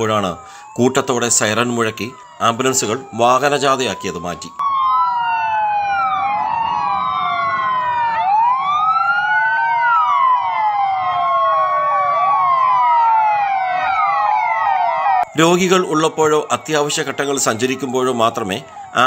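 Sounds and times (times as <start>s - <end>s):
ambulance sirens wailing: 0.0s - 19.0s
low rumble of vehicles: 1.1s - 19.0s.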